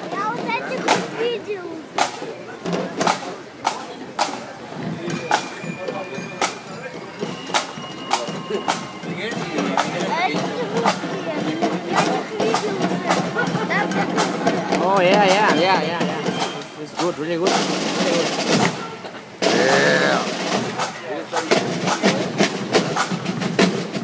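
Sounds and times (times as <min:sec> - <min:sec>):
crowd chatter: 0:00.0 - 0:24.0
drum marching beat: 0:00.0 - 0:24.0.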